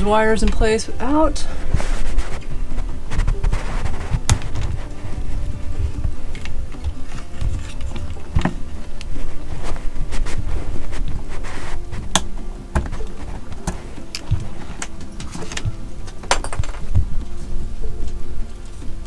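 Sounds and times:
faint background music: 0.0 - 19.0
wires being handled: 1.4 - 19.0.

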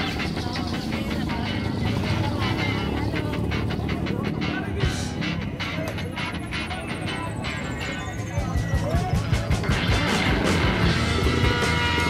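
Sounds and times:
background music: 0.0 - 12.0
busy street traffic: 0.0 - 12.0
crowd voices: 0.0 - 12.0
motorcycle and van engines: 0.0 - 12.0.

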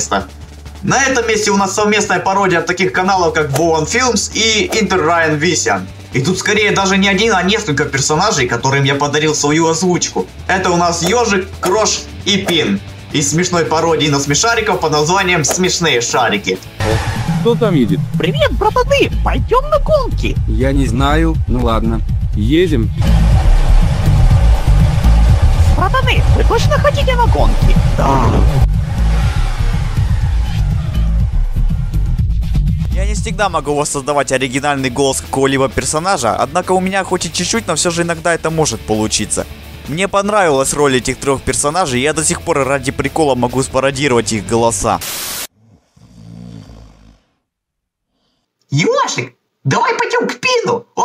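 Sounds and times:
background music: 0.0 - 45.5
cartoon snore: 45.5 - 47.5.

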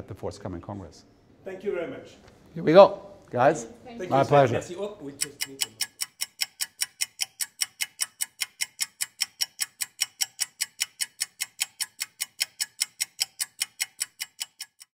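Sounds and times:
clock-like ticking: 4.8 - 15.0.

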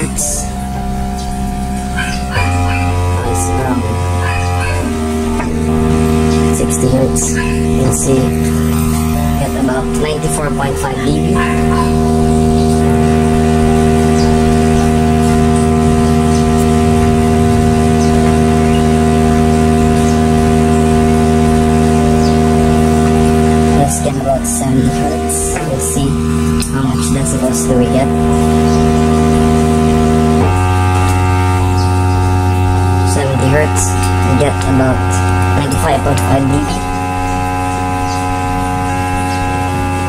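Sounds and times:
low sine test tone: 0.0 - 40.0.

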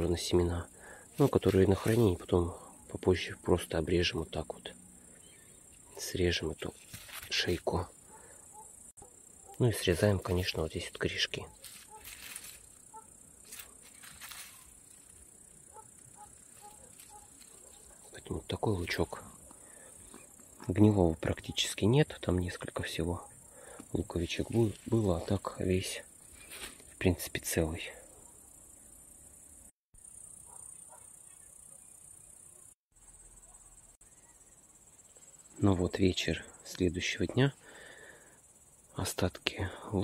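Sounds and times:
crickets chirring: 0.0 - 40.0
dry onion skins rustling: 6.7 - 7.6, 11.4 - 15.4, 16.0 - 18.0.

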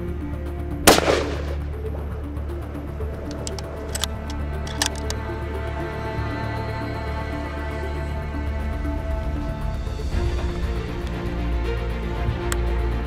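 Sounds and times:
background music: 0.0 - 13.0
rifle shot: 0.9 - 1.7.

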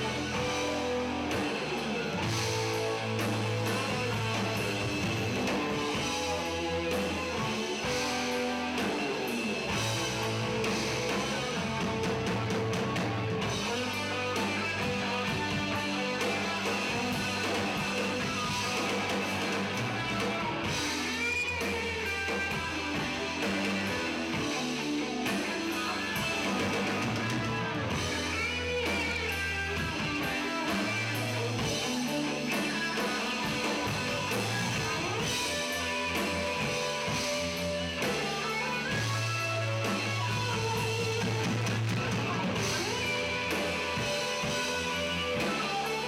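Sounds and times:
live rock band playing: 0.0 - 46.0.

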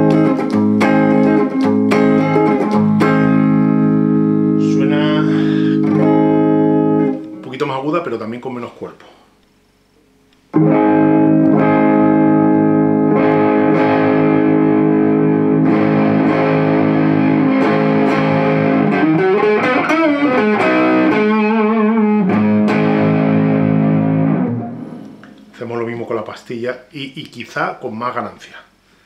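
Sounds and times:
electric guitar strummed chords: 0.0 - 7.5, 10.5 - 25.6.

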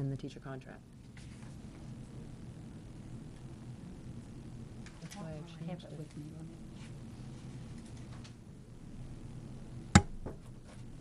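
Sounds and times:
low steady room hum: 0.0 - 11.0
sharp knock: 10.0 - 10.4.

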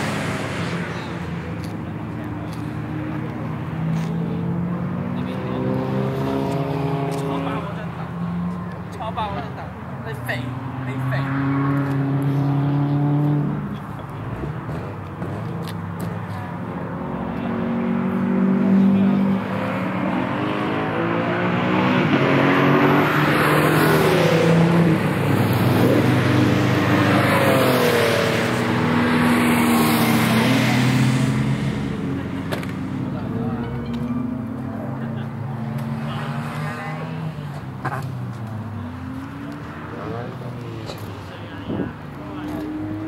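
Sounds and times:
racing car engines revving: 0.0 - 43.0.

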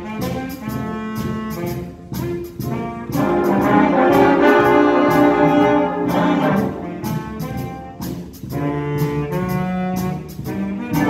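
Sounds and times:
concert band playing held chords: 2.2 - 11.0.

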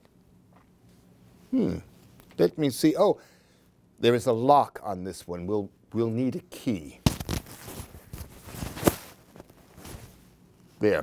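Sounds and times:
clothing rustling and scraping: 7.2 - 10.8.

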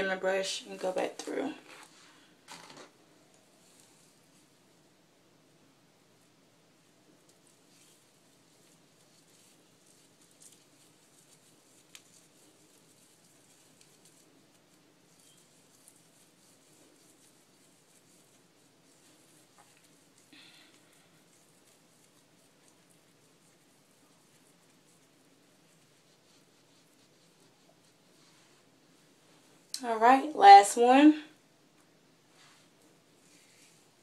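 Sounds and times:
hair rustling: 0.0 - 4.9, 6.2 - 31.1, 32.2 - 34.0.

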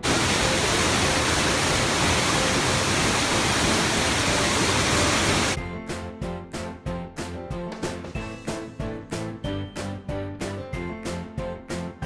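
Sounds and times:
waterfall rushing: 0.0 - 5.6.

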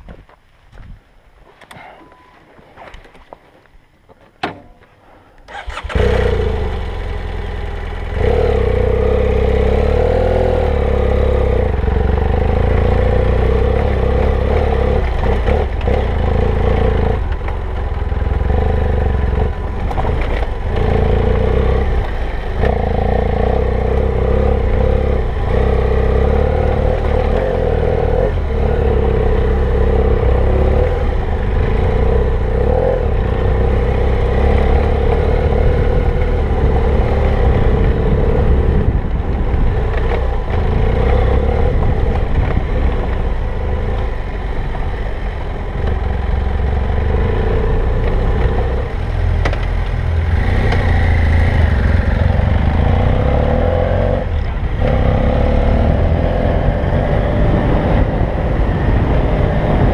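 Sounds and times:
motorcycle engine revving: 5.5 - 59.9.

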